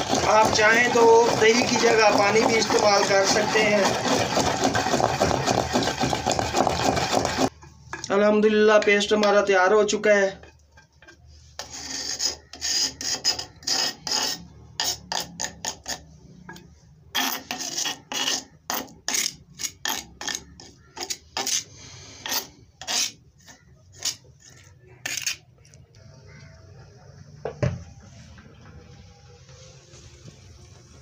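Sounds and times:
utensil scraping paste in bowl: 0.0s - 7.6s, 10.0s - 26.6s.

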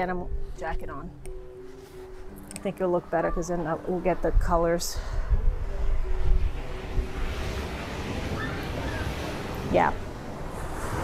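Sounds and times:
ocean surf washing: 2.3s - 11.0s
wind buffeting microphone: 2.7s - 11.0s.

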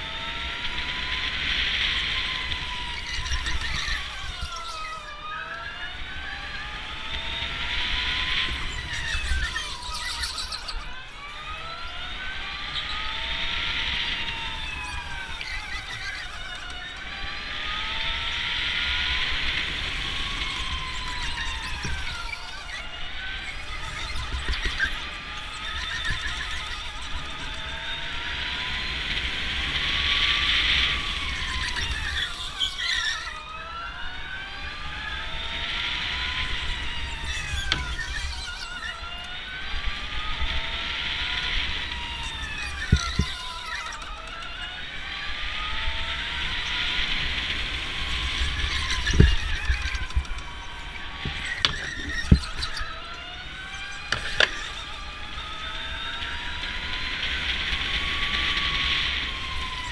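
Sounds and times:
electric go-kart motors whining: 0.0s - 59.9s
low rumble of karts running: 0.0s - 59.9s.

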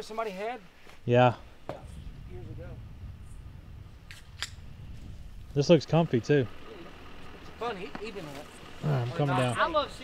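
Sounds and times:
low steady rumble: 1.2s - 10.0s.

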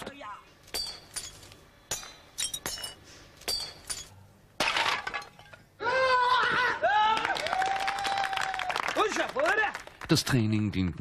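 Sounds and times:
sharp clinking knocks: 0.7s - 5.6s.

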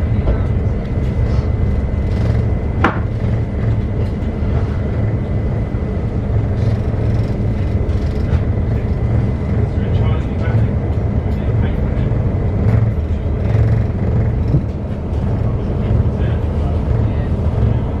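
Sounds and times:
train wheels rumbling on track: 0.0s - 18.0s.

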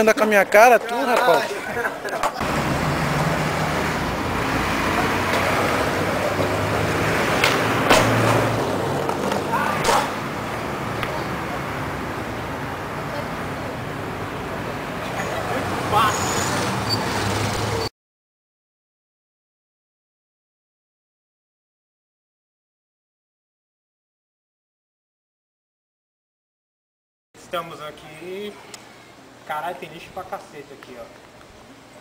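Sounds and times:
street noise: 0.0s - 17.9s, 27.4s - 32.0s
skateboard clacking on concrete: 0.8s - 1.5s, 7.2s - 10.2s.

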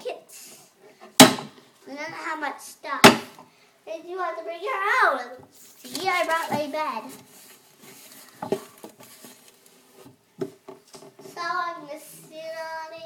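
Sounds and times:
small handling knocks: 8.3s - 9.4s.

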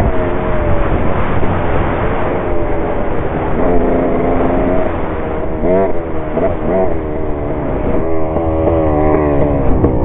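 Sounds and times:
dirt bike engine running: 0.0s - 10.0s.

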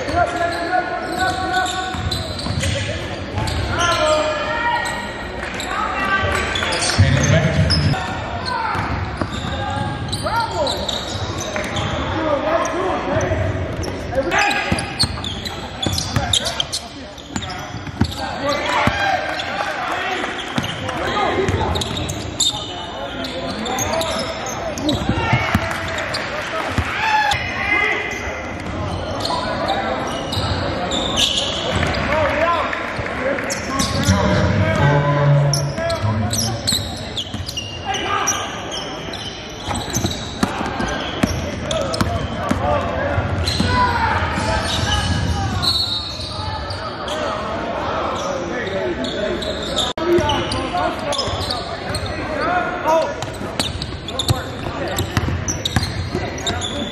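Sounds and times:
indistinct voices: 33.6s - 38.1s.

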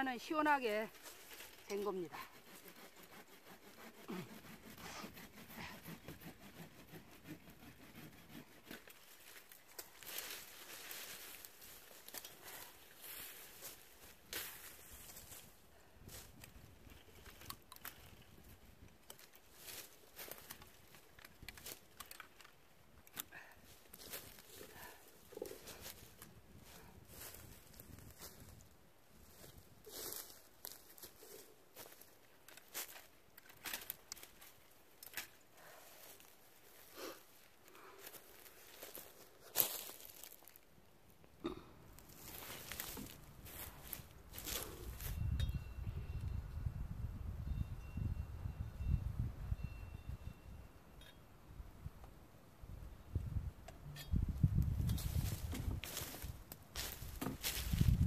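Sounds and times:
branches rustling and crackling: 0.0s - 45.3s, 53.9s - 58.0s.

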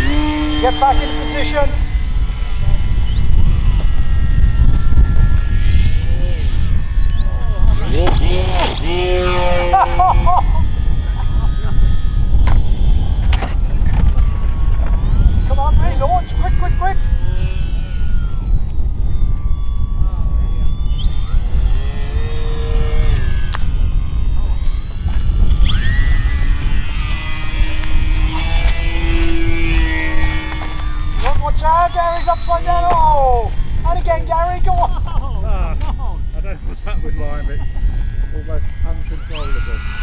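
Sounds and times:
model aircraft motors whining: 0.0s - 40.0s
wind rumble on microphone: 0.0s - 40.0s.

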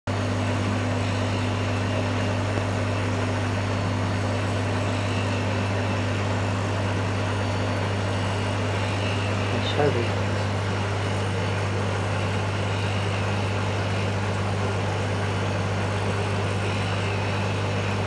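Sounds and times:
low electrical hum: 0.1s - 18.0s
person speaking: 9.5s - 10.3s.

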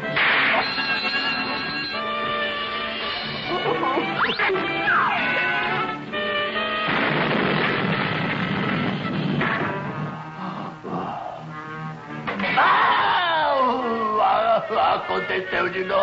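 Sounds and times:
cartoon orchestral music: 0.0s - 6.9s
long noisy crash: 6.9s - 10.1s.

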